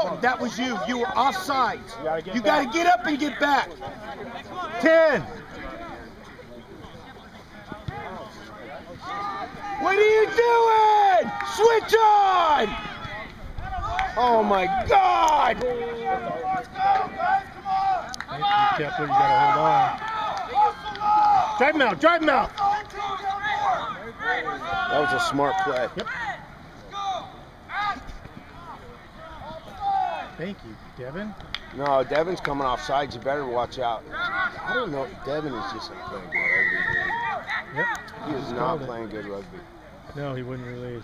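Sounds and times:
low outdoor background: 0:00.0 - 0:41.0
distant voices shouting: 0:07.0 - 0:38.8.

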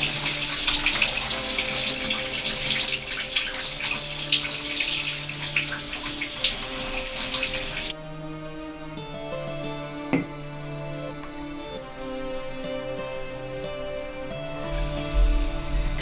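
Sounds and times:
shower water splattering: 0:00.0 - 0:07.9
soft background music: 0:00.0 - 0:16.0.

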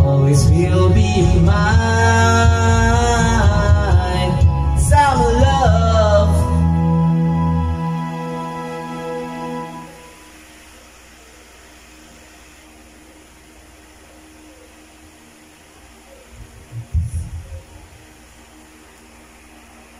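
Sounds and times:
karaoke backing track: 0:00.0 - 0:19.9
low hiss and hum: 0:00.0 - 0:19.9
low thumps: 0:16.4 - 0:18.1.

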